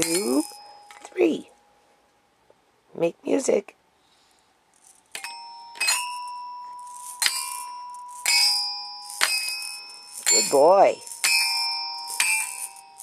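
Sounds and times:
toy metallophone notes ringing: 0.0s - 1.4s, 5.2s - 13.0s.

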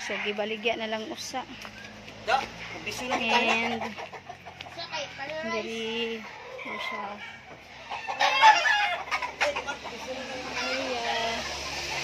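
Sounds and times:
roosters clucking and crowing: 0.0s - 12.0s.

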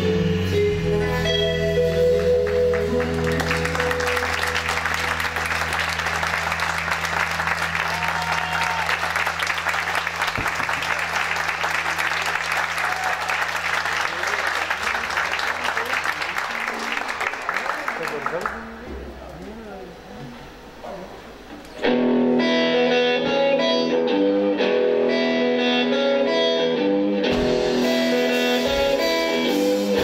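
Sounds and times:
audience applauding: 2.2s - 18.9s
audience shouts: 7.7s - 9.2s, 12.0s - 13.6s.

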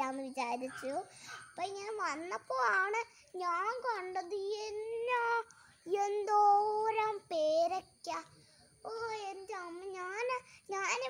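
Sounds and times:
girl singing: 0.0s - 11.0s.

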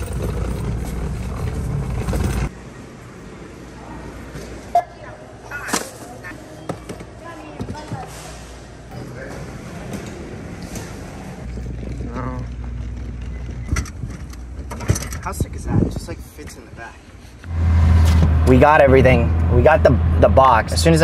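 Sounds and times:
tool bag wheels rumbling: 0.0s - 2.5s, 11.4s - 15.3s.

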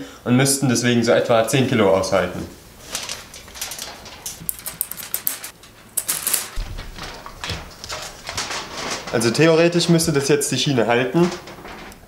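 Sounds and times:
aluminium foil crinkling: 2.1s - 12.0s.

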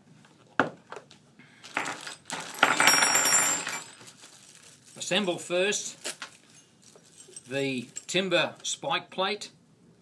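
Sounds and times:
small metal parts rattling: 1.6s - 8.3s.

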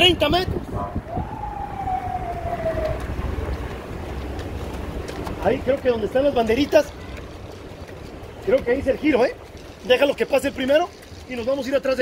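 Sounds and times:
vehicle low rumble: 0.0s - 12.0s
siren wail sliding down: 0.8s - 3.6s.

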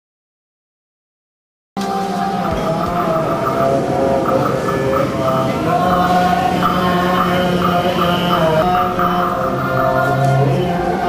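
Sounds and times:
monks chanting: 1.8s - 11.0s.

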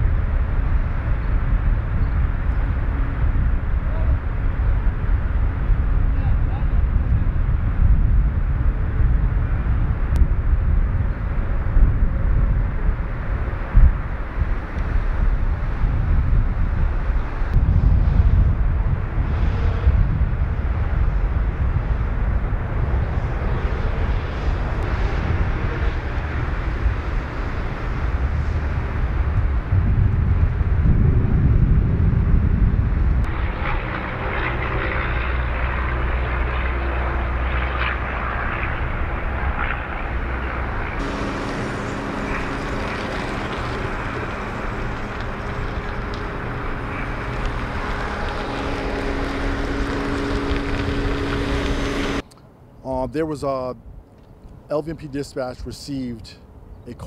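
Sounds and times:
low engine rumble: 0.0s - 57.0s
steady tones: 33.2s - 52.4s.

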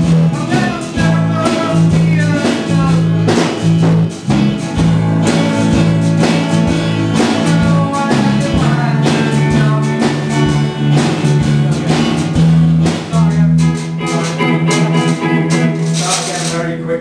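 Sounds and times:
electric guitar: 0.0s - 17.0s
upright bass line: 0.0s - 17.0s
washboard percussion rattling: 0.4s - 16.8s.

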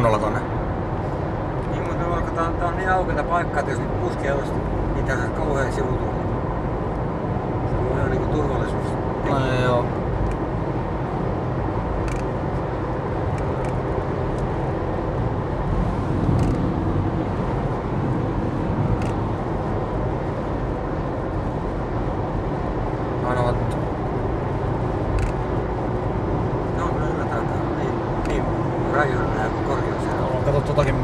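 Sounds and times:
car road and engine noise: 0.0s - 31.0s.

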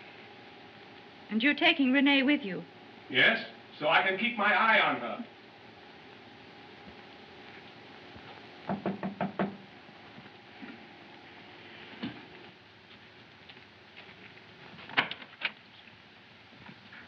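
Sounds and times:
knocking on a door: 8.7s - 9.6s.

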